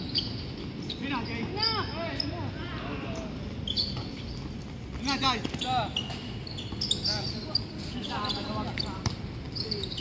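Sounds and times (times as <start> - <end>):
sneakers squeaking: 0.0 - 10.0
basketball bouncing on court: 8.7 - 9.9.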